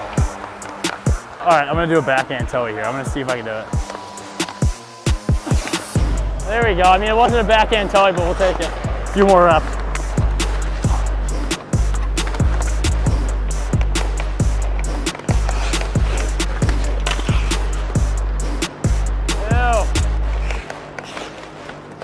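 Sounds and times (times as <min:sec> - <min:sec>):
music with deep bass line: 0:03.7 - 0:20.6.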